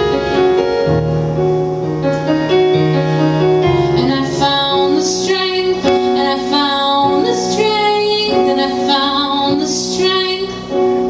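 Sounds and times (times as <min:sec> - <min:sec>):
electric keyboard piano sound: 0:00.0 - 0:11.0
woman singing: 0:03.9 - 0:10.9.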